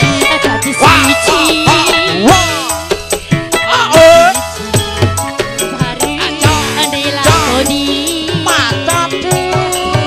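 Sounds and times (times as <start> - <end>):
woman singing: 0.0 - 3.0, 5.4 - 10.0
band accompaniment: 0.0 - 10.0
hand-drum strokes: 0.0 - 10.0.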